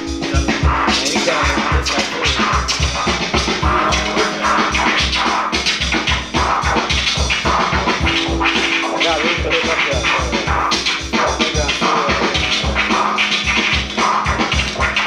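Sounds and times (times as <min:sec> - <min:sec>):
steady drum beat: 0:00.0 - 0:15.0
vinyl record scratching: 0:00.0 - 0:15.0.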